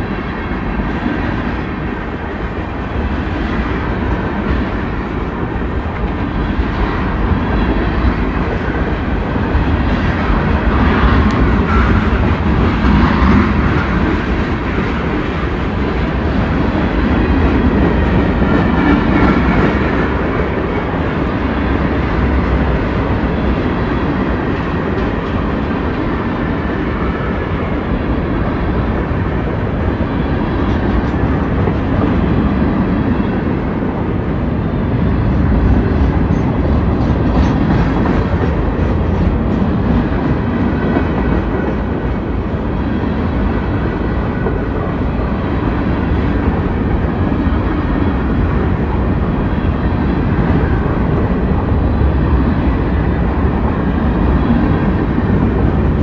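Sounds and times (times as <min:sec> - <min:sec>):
freight train wheels rumbling: 0:00.0 - 0:56.0.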